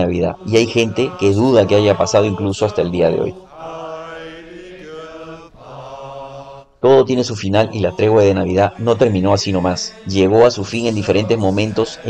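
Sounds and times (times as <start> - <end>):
person speaking: 0.0 - 3.4, 6.8 - 12.0.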